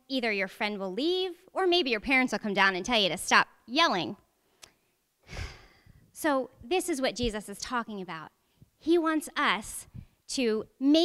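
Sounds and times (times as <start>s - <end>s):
woman speaking: 0.0s - 4.2s, 6.2s - 11.0s
breath drawn in near microphone: 5.2s - 6.1s.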